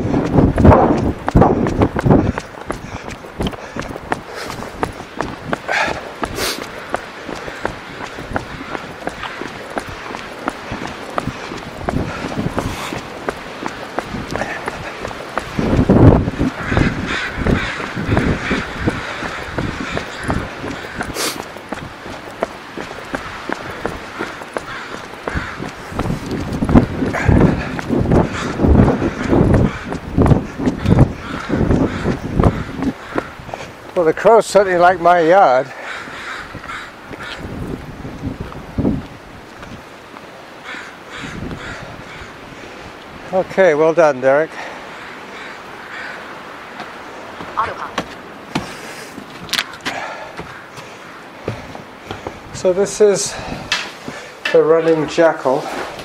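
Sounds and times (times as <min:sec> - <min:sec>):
runners' footsteps: 0:00.0 - 0:43.6, 0:45.4 - 0:56.0
crows cawing: 0:00.9 - 0:38.5, 0:39.5 - 0:43.3, 0:44.5 - 0:56.0.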